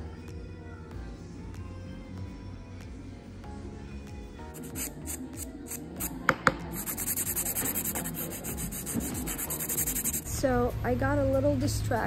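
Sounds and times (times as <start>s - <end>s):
nail buffer rasping on fingernail: 4.5s - 6.2s, 6.8s - 10.2s
woman talking: 10.2s - 12.0s.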